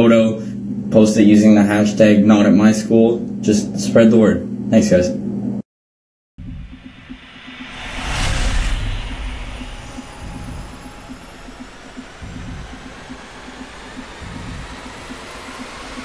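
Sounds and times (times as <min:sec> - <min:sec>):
rush of noise: 0:06.4 - 0:16.0
steady rumble with low pulse: 0:06.4 - 0:16.0.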